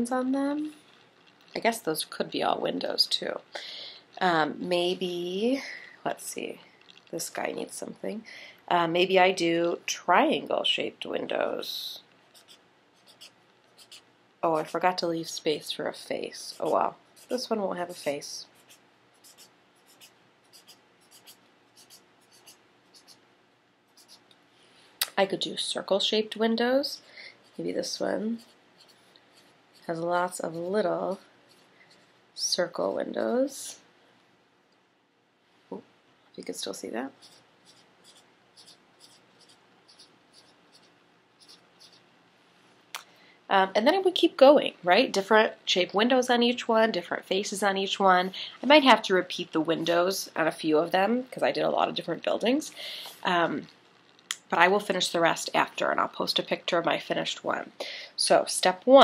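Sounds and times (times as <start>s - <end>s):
marker scratching on paper: 12.3s - 15.0s, 16.4s - 23.2s, 23.9s - 24.3s, 27.4s - 31.7s, 37.1s - 42.0s.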